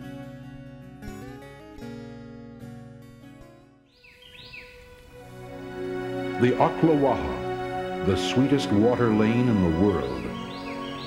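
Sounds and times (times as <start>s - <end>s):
acoustic guitar music: 0.0s - 11.0s
bird chirping: 3.9s - 5.1s, 8.1s - 11.0s.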